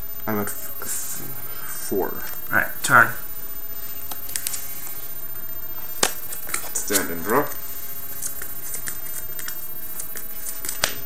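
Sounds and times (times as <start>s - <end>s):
background hiss: 0.0s - 11.0s
trading cards tapping on mat: 8.4s - 11.0s.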